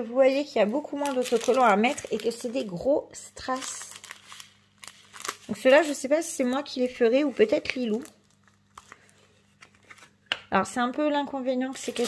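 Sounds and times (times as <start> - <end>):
packaging crinkling: 0.6 - 10.3, 11.7 - 12.0.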